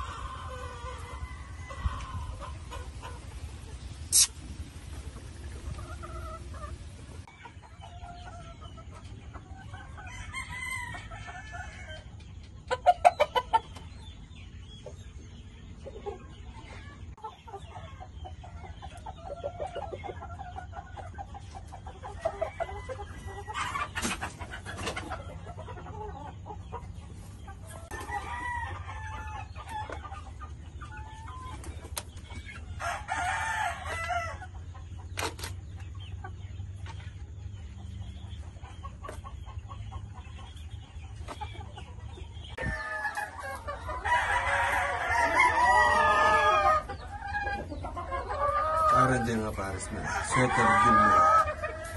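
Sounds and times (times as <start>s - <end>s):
chickens clucking: 0.0s - 51.9s
rooster crowing: 43.9s - 46.8s.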